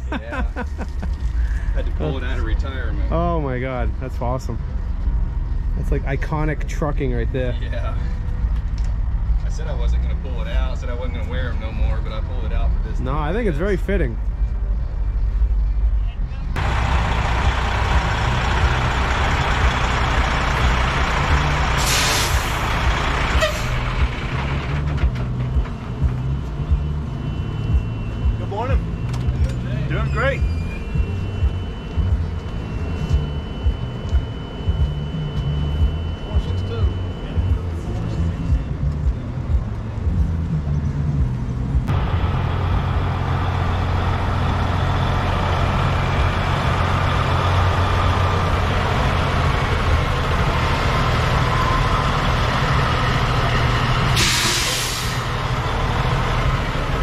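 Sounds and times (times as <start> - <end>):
diesel engine idling: 0.0 - 57.0
compressed air hisses: 54.2 - 55.2.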